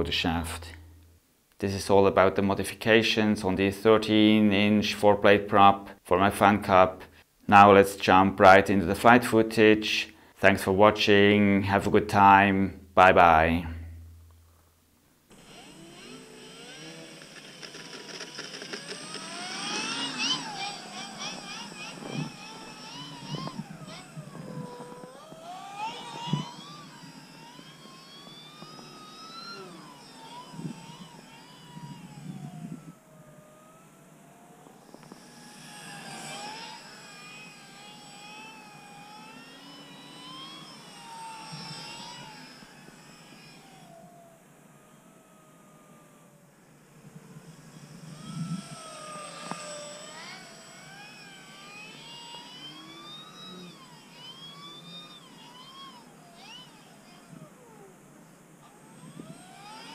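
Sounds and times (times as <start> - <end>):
rc plane motor whine: 15.3 - 59.9.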